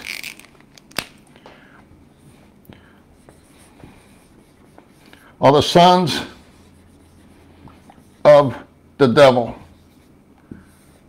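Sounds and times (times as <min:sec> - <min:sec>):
marker scratching on whiteboard: 0:03.2 - 0:08.5, 0:09.6 - 0:11.0.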